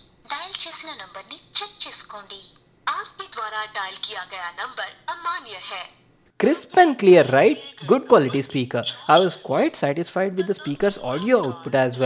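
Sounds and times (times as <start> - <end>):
phone call voice through speaker: 7.2 - 9.5, 10.4 - 12.0.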